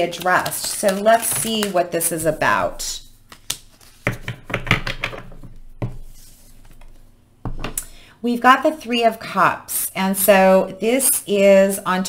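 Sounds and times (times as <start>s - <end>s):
cards being shuffled: 0.0s - 2.4s, 3.3s - 7.0s.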